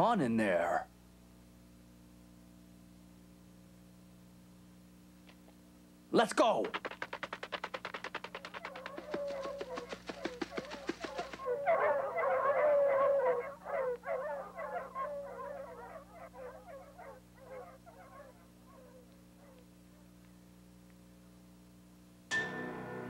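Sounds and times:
running footsteps: 6.6s - 12.2s
dogs barking and yelping: 8.0s - 20.1s.

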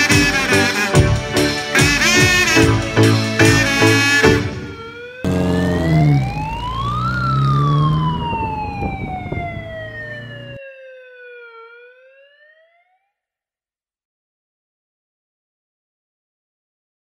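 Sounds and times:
siren wailing: 4.1s - 13.1s.

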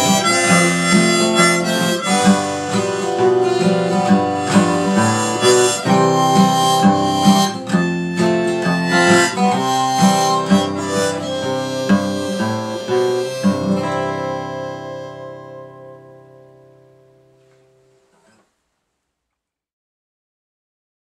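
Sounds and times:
harmonica playing: 0.0s - 17.0s
acoustic guitar strumming: 0.0s - 18.4s.

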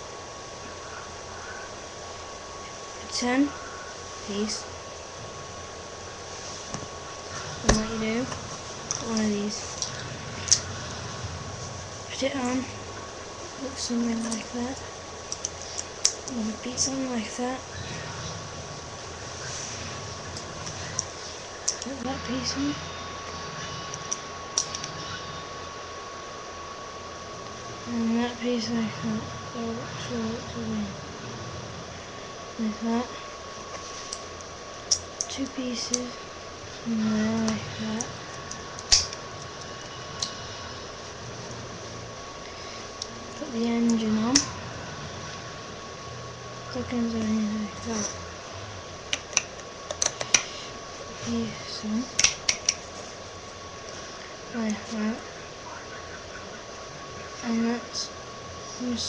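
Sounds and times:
faint high whine: 0.0s - 59.0s
faint steady high hum: 0.0s - 59.0s.

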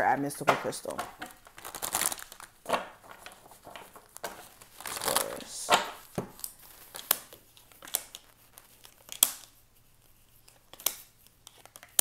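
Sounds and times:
faint card rustling: 0.4s - 12.0s.

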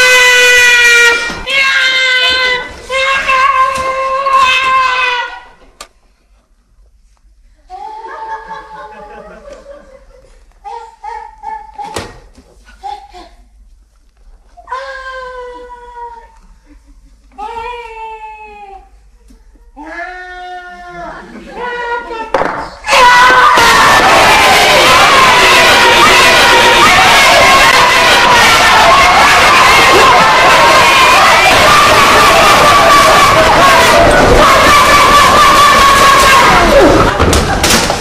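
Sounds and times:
crowd shouting and cheering: 0.0s - 5.6s, 21.4s - 38.0s
voices holding long notes: 23.6s - 37.2s.

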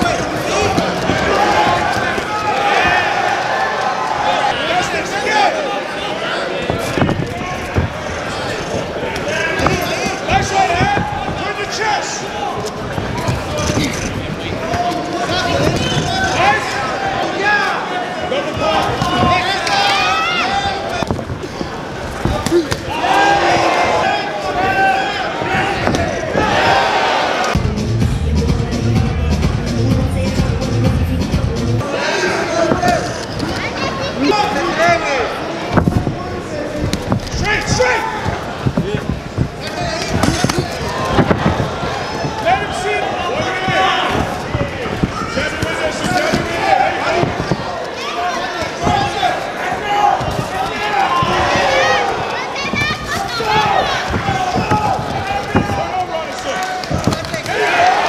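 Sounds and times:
footwork on ring canvas: 0.0s - 27.6s, 32.1s - 58.0s
voices shouting: 14.6s - 21.1s, 22.4s - 27.6s, 39.6s - 58.0s
sharp thuds: 36.8s - 47.8s, 48.6s - 56.0s.

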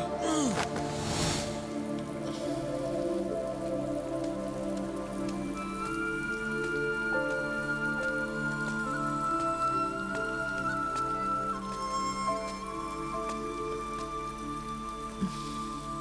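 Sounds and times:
slow music with held notes: 0.0s - 16.0s
soft rain-like patter: 0.0s - 16.0s.

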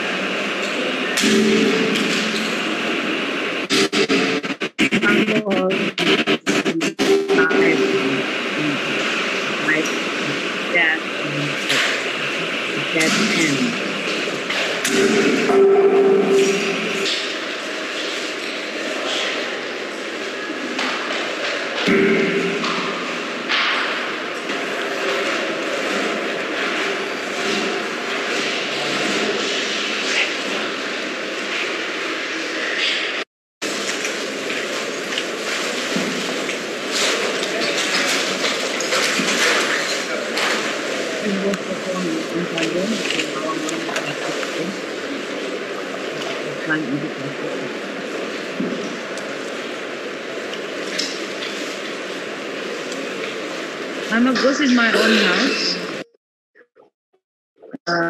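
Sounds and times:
indistinct voice: 0.0s - 14.0s, 21.8s - 22.9s.

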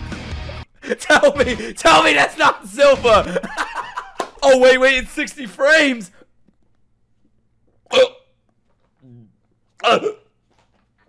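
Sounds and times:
man speaking: 0.8s - 6.2s
man grunting: 9.8s - 10.2s.

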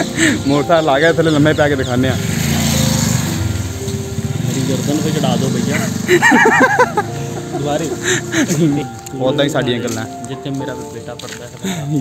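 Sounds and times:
motorcycle engine at low speed: 1.8s - 6.2s.

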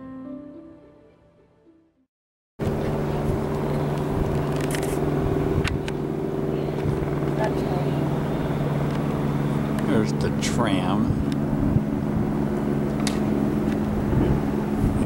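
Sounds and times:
machinery humming: 2.6s - 15.0s.

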